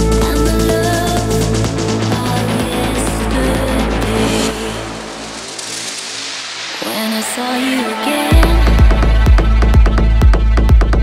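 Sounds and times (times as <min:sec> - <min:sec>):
melodic techno music: 0:00.0 - 0:11.0
hissing noise sweep: 0:01.0 - 0:09.2.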